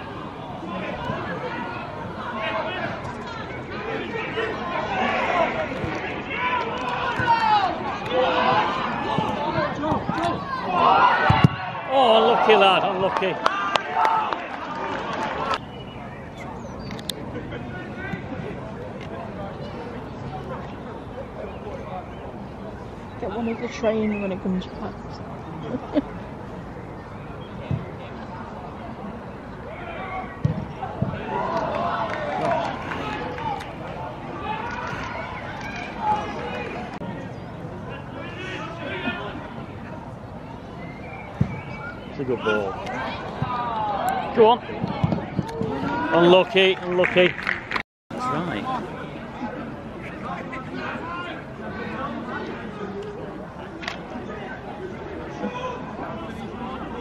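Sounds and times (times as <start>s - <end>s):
players shouting: 0.0s - 16.3s, 29.6s - 46.8s
spectators chattering: 0.0s - 57.0s.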